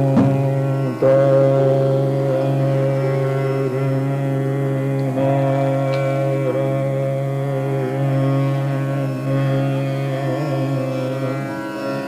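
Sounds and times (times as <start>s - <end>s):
tanpura drone: 0.0s - 12.0s.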